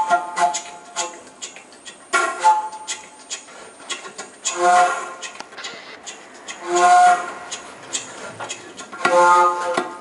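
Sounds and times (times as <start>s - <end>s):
flutes playing long hooting notes: 0.0s - 1.5s, 2.1s - 3.4s, 4.4s - 5.4s, 6.5s - 7.8s, 8.9s - 10.0s.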